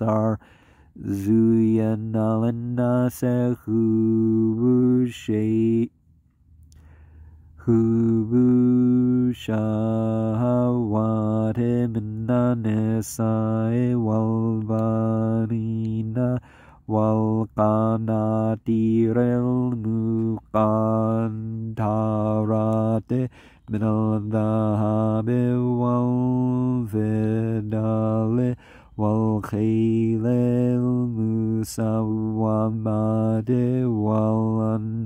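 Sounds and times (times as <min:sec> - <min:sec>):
man chanting recitation: 0:00.0 - 0:05.9, 0:07.6 - 0:35.0.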